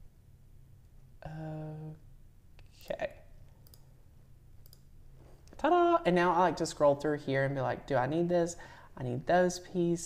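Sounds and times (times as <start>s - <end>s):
computer mouse clicking: 3.5s - 3.9s, 4.6s - 4.9s.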